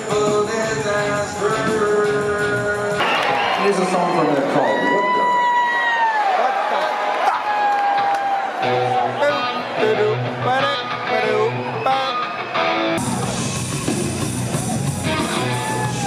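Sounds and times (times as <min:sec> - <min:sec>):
live rock band: 0:00.0 - 0:05.6, 0:07.8 - 0:16.0
crowd noise: 0:00.0 - 0:16.0
electric guitar strumming chords: 0:08.6 - 0:16.0
bass line: 0:13.0 - 0:16.0.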